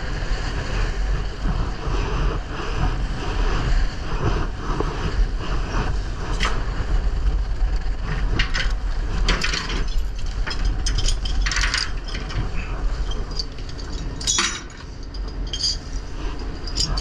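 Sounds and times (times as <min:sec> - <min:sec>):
boat low rumble: 0:00.0 - 0:17.0
hauling gear clicking and rattling: 0:07.8 - 0:17.0.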